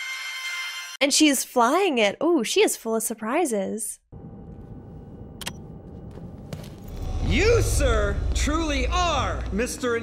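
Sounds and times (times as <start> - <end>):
jet engines rumbling: 4.2 - 10.0.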